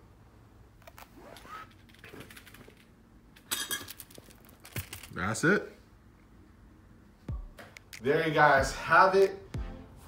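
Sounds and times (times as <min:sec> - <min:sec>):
belt and metal plates rustling and clicking: 0:01.2 - 0:05.2.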